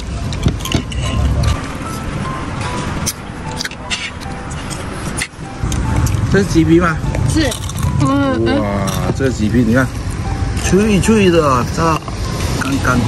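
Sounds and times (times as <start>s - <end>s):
background music: 0.0s - 13.0s
passing street traffic: 0.0s - 13.0s
restaurant din: 0.0s - 13.0s.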